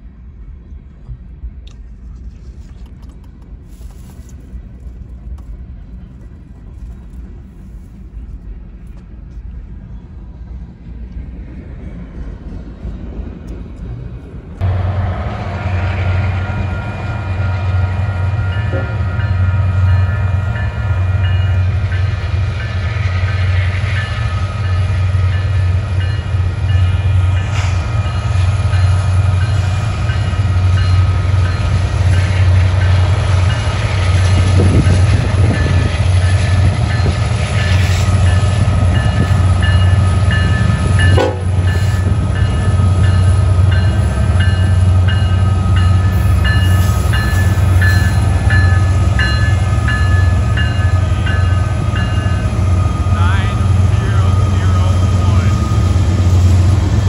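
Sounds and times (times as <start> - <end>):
diesel locomotive engine rumble: 0.0 - 57.0
locomotive bell ringing: 16.0 - 57.0.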